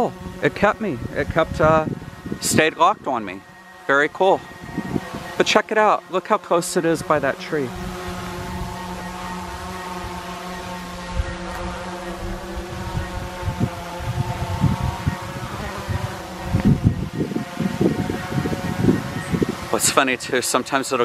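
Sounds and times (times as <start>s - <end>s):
wind buffeting microphone: 0.0s - 5.7s, 6.9s - 21.0s
drone propellers humming: 0.0s - 21.0s.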